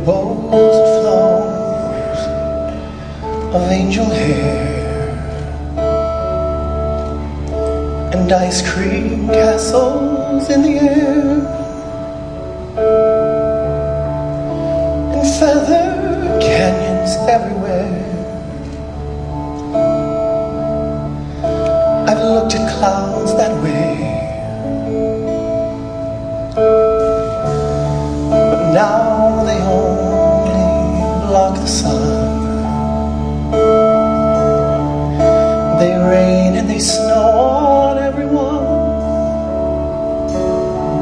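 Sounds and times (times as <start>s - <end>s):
man singing: 0.0s - 6.0s, 8.0s - 12.2s, 15.0s - 18.9s, 21.7s - 25.2s, 27.8s - 34.6s, 35.2s - 41.0s
band playing held chords: 0.0s - 41.0s.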